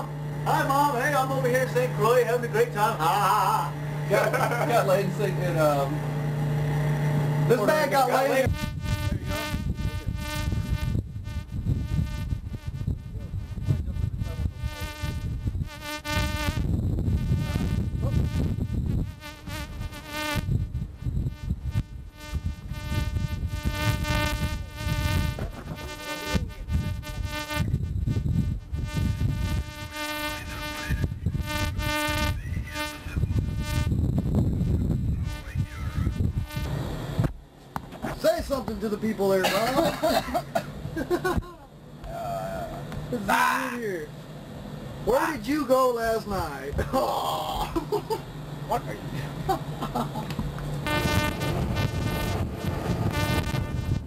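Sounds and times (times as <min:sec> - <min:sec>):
electrical buzzing hum: 0:00.0 - 0:54.0
low rumble: 0:49.4 - 0:54.0.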